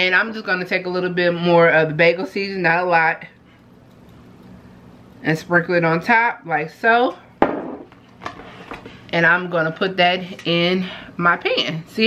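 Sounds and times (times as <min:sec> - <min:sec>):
shaker knocked onto counter: 0:07.4 - 0:08.0.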